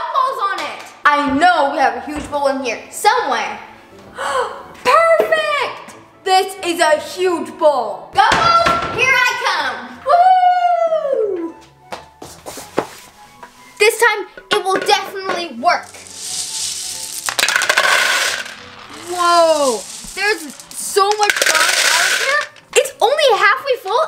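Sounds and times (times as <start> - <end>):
background music: 0.0 - 24.0
gumballs clattering into plastic bowl: 14.4 - 22.8.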